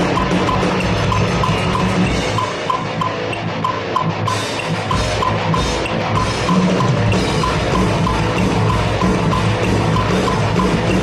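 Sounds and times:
drum kit played fast: 0.0 - 11.0
high metronome tick: 0.0 - 11.0.

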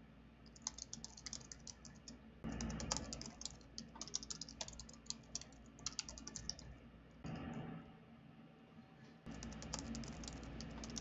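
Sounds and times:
typing on computer keyboard: 0.5 - 6.8, 9.3 - 11.0.

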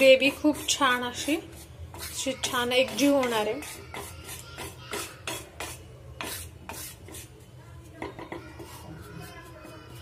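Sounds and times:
wooden spatula scraping flour in pan: 0.0 - 10.0.

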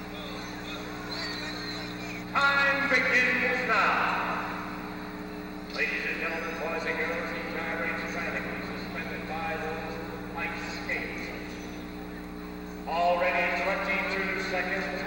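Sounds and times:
steady low hum: 0.0 - 15.0
man speaking indistinctly: 2.3 - 4.6, 5.7 - 11.4, 12.8 - 15.0.

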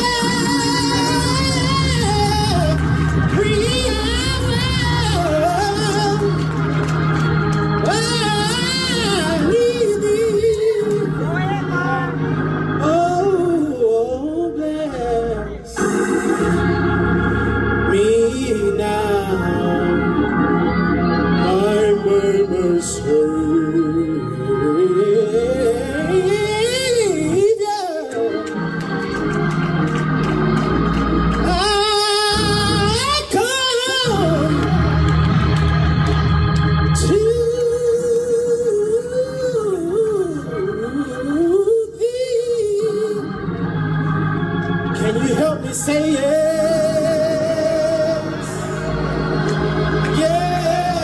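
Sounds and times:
man singing gospel: 0.0 - 51.0
organ accompaniment: 0.0 - 51.0.

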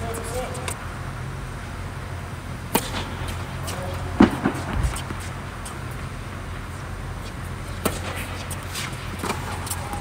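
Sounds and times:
steady low hum: 0.0 - 10.0
tennis racket hitting ball: 2.7 - 5.9, 7.7 - 9.8.

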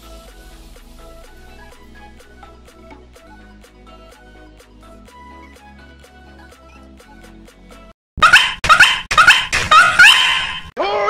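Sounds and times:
dog barking: 8.2 - 10.7.

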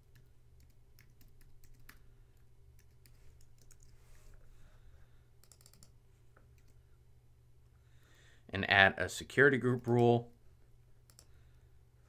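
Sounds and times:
typing on computer keyboard: 0.0 - 2.0, 2.8 - 3.9, 5.4 - 6.0, 11.1 - 11.4.

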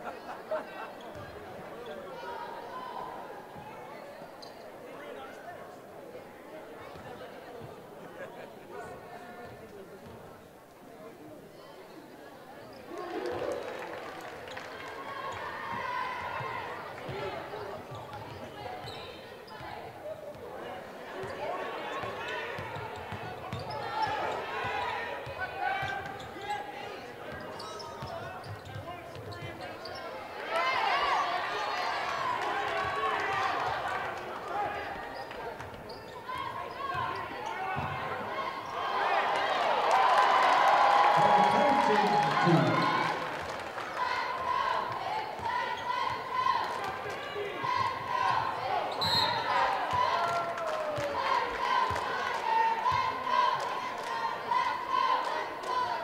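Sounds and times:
murmur of crowd voices: 0.0 - 56.0.

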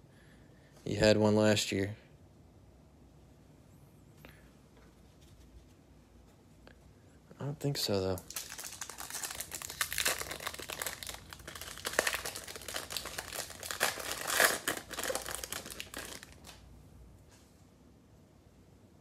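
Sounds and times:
foil wrapper crinkling: 8.1 - 16.6.

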